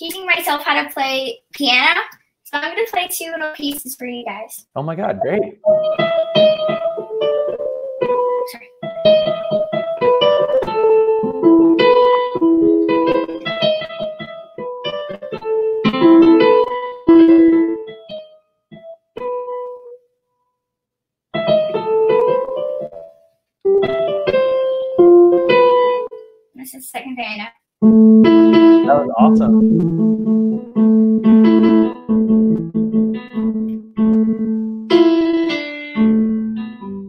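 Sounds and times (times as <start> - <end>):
electronic keyboard melody: 4.9 - 20.0, 21.4 - 26.4, 27.8 - 37.0.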